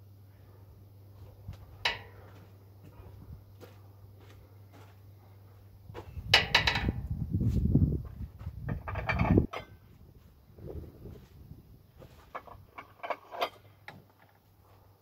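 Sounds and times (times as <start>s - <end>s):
low rumbling and clattering: 5.9s - 14.4s
steel weight plate clinking: 8.7s - 9.9s.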